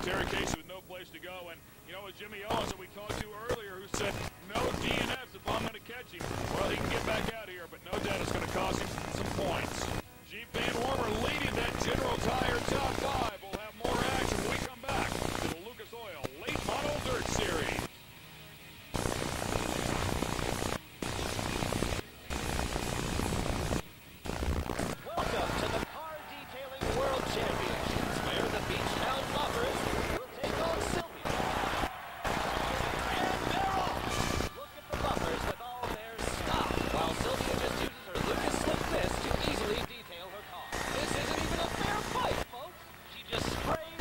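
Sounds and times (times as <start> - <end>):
voices: 0.0 - 17.8, 25.0 - 44.0
commercial music: 23.9 - 43.9.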